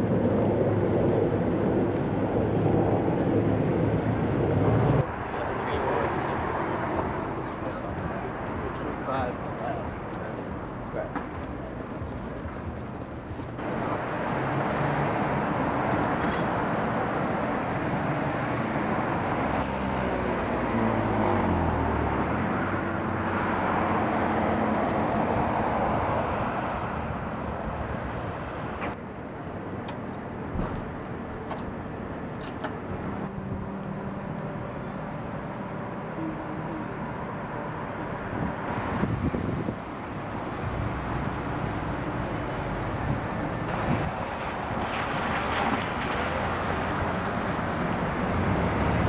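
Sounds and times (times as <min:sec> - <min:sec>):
road traffic: 0:00.0 - 0:49.0.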